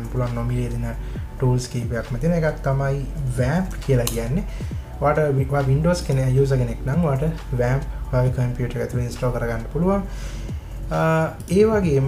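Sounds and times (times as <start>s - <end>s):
man talking: 0.0s - 10.1s, 10.9s - 12.0s
soft background music: 0.0s - 12.0s.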